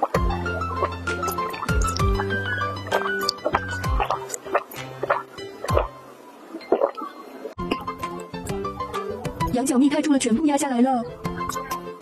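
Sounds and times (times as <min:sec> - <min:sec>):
electronic music with deep bass: 0:00.0 - 0:06.1.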